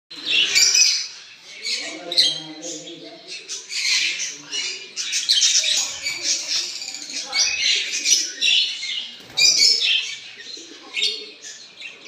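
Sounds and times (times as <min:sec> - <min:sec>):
lovebirds chattering: 0:00.1 - 0:12.0.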